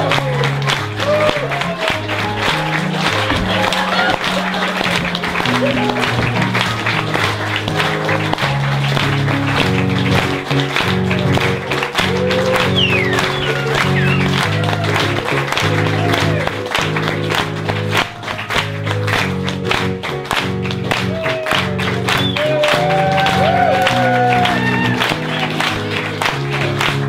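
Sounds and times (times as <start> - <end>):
audience applauding: 0.0 - 27.0
live instrumental music: 0.0 - 27.0.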